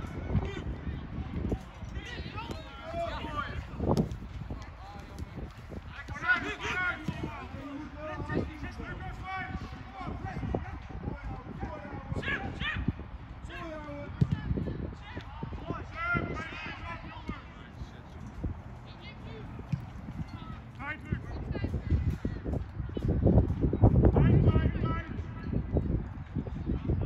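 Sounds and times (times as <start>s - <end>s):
wind rumble on microphone: 0.0s - 27.0s.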